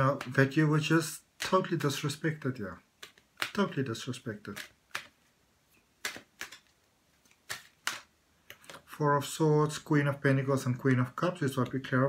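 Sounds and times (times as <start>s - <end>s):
cards snapping on a table: 3.0s - 3.8s, 4.4s - 5.2s, 6.0s - 8.8s.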